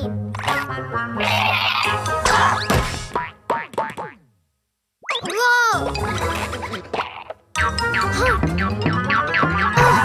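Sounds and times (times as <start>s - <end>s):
cartoon boing sound effects: 7.0s - 10.0s.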